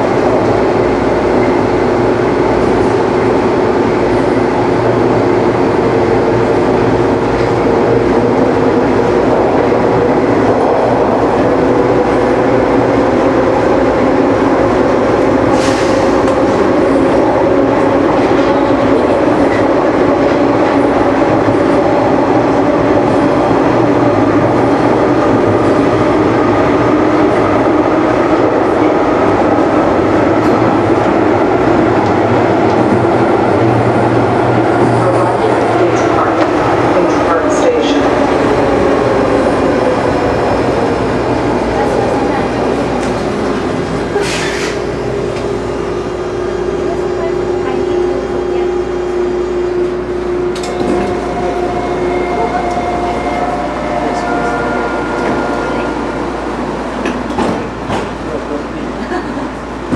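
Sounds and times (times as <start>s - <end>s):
subway car wheels rumbling on rail: 0.0s - 59.9s.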